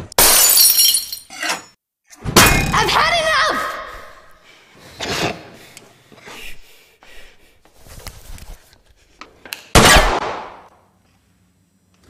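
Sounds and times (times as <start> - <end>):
pistol shot: 9.8 - 10.7.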